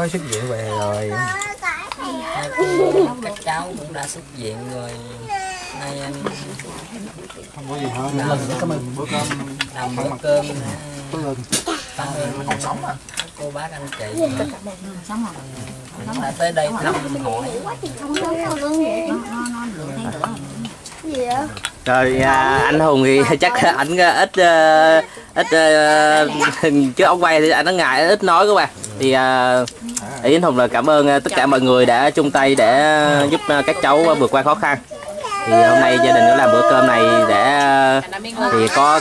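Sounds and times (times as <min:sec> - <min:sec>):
people talking: 0:00.0 - 0:27.0, 0:28.8 - 0:39.0
people chatting: 0:00.0 - 0:39.0.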